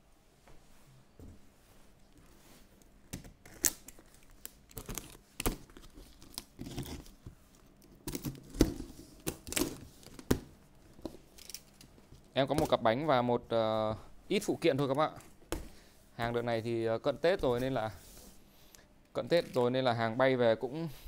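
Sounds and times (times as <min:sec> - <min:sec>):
packing tape ripping off cardboard: 0:03.1 - 0:07.3, 0:07.9 - 0:10.5.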